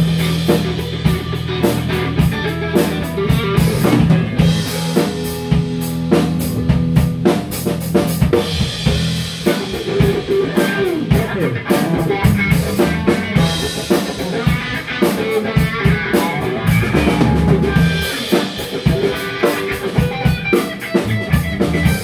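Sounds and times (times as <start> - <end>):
drums keeping steady beat: 0.0 - 22.0
live band playing instrumental: 0.0 - 22.0.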